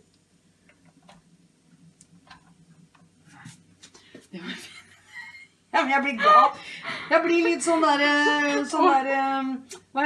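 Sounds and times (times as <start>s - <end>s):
low steady hum: 0.0s - 10.0s.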